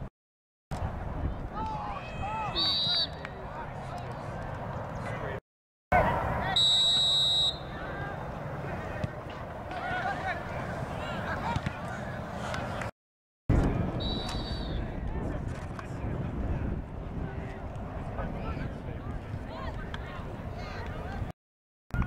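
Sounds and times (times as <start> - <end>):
referee's whistle: 2.5 - 3.2, 6.5 - 7.8, 14.0 - 14.8.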